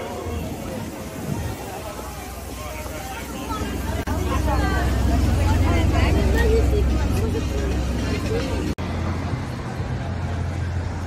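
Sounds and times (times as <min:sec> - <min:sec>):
passers-by talking: 0:00.0 - 0:11.0
traffic engine rumble: 0:00.0 - 0:11.0.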